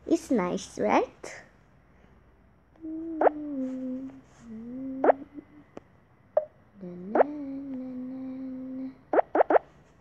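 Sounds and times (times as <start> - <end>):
rising bloop sound effect: 9.1 - 9.6.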